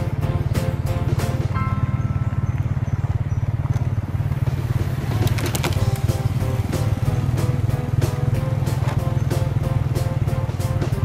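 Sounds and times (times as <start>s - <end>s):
motorcycle engine cruising: 0.0s - 11.0s.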